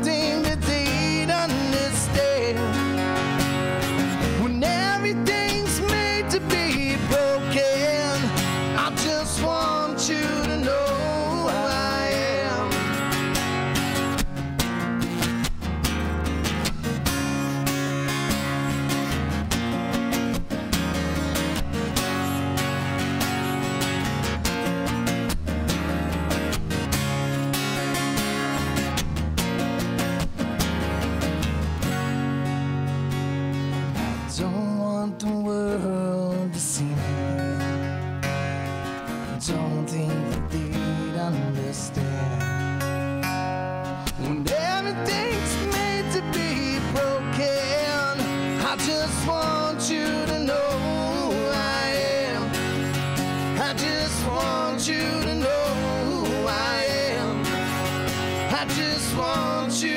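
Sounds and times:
man singing: 0.0 - 3.2, 4.2 - 13.3, 34.3 - 37.8, 39.3 - 42.7, 44.0 - 59.9
acoustic guitars strumming: 0.0 - 59.9.

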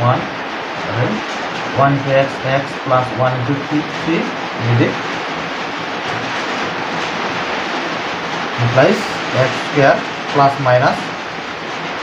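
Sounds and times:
steady rushing hiss: 0.0 - 12.0.

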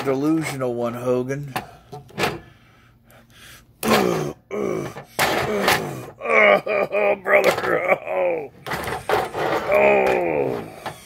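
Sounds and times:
person grunting and moaning: 3.8 - 11.0.

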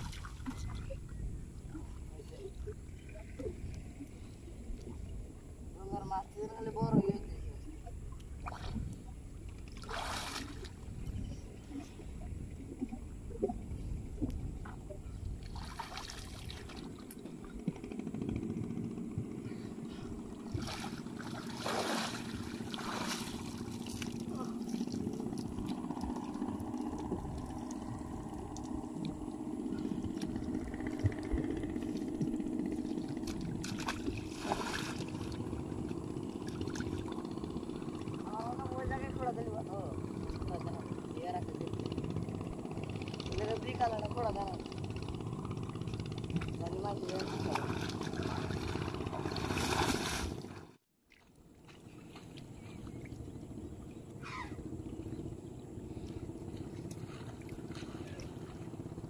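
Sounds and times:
river water splashing: 0.0 - 5.7, 8.3 - 12.0, 14.8 - 18.0, 19.9 - 39.3, 40.0 - 59.0
steady low hum: 0.0 - 59.0.

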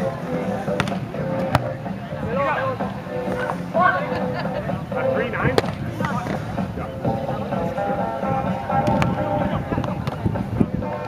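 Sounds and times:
background music: 0.0 - 11.0
people talking: 0.0 - 11.0
volleyball being hit: 0.8 - 1.8, 5.5 - 6.2.

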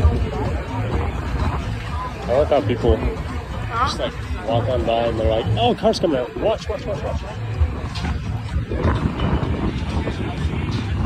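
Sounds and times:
crowd chatter: 0.0 - 11.0
wind buffeting microphone: 0.0 - 11.0.

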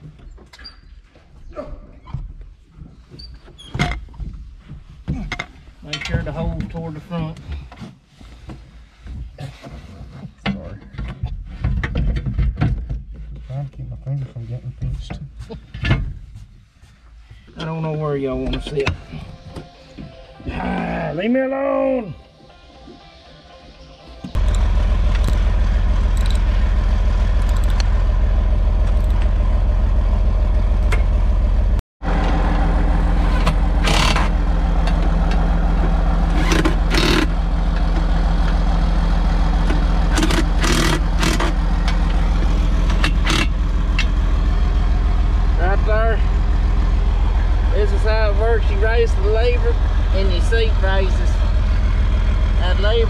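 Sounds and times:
diesel engine running: 24.2 - 53.0
impact driver bursts: 33.8 - 34.3, 36.3 - 37.3, 40.1 - 41.6, 43.0 - 43.6.

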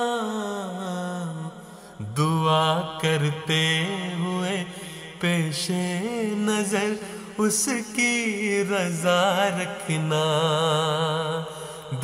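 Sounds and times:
solo voice singing unaccompanied: 0.0 - 12.0.

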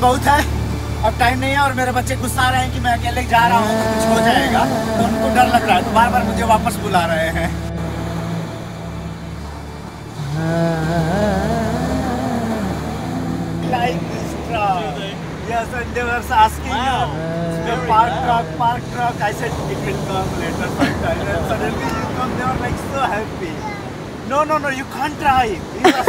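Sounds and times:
steady low hum: 0.0 - 23.4
voices talking: 0.0 - 26.0.

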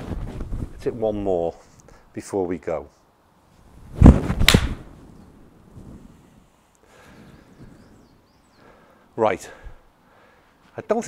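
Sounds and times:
sharp crack: 4.1 - 4.9.

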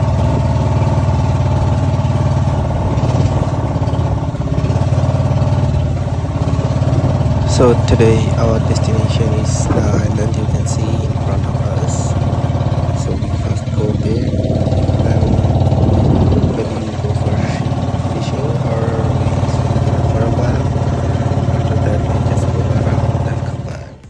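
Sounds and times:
motor boat engine droning: 0.0 - 24.0.

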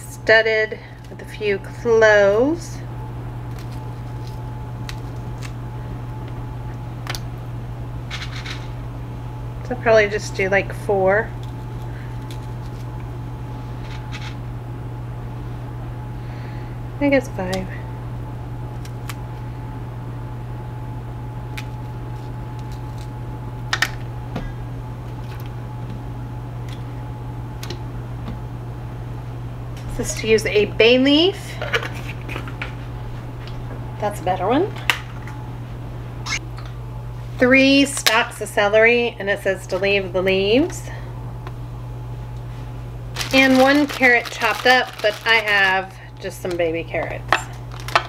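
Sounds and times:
steady low hum: 0.0 - 48.0.

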